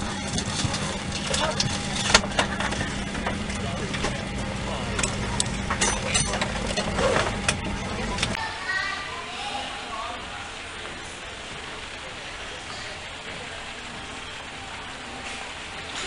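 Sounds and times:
aircraft engines humming: 0.0 - 8.4
murmur of passengers' voices: 0.0 - 16.0.

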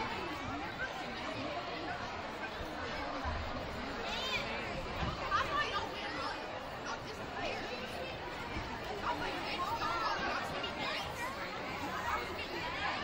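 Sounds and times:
children's voices: 0.0 - 13.0
crowd chatter: 0.0 - 13.0.

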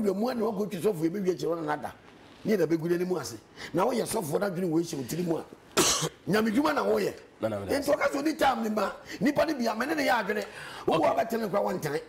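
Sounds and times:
man coughing: 5.8 - 6.2
man speaking: 6.2 - 12.0.

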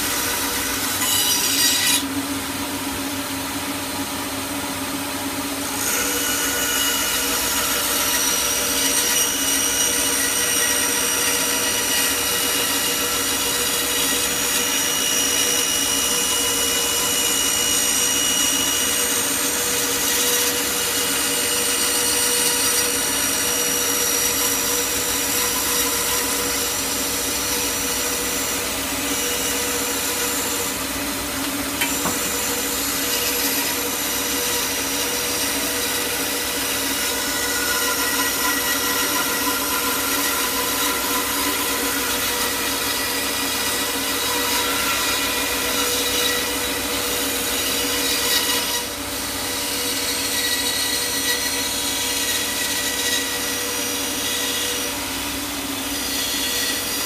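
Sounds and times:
saw blade rasping through wood: 0.0 - 2.1, 5.8 - 57.0
bandsaw humming: 0.0 - 2.7, 5.7 - 57.0.

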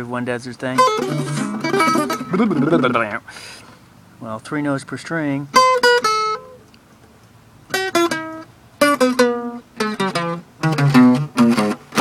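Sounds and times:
acoustic guitar picked notes: 0.0 - 3.5, 4.3 - 12.0.

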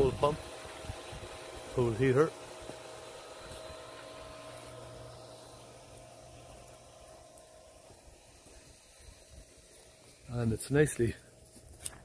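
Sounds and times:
pool pump motor hum: 0.0 - 12.0.

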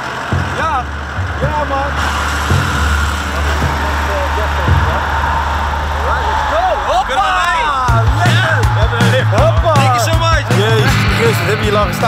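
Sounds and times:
excited voices: 0.0 - 12.0
vehicle engine idling: 0.0 - 12.0
music with steady beat: 7.6 - 12.0.

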